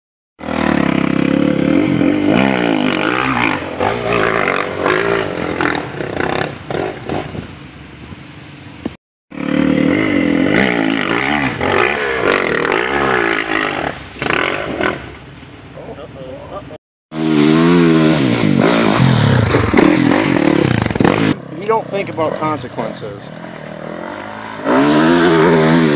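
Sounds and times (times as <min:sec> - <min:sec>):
dirt bike engine revving: 0:00.4 - 0:07.5, 0:09.3 - 0:15.2, 0:17.1 - 0:25.9.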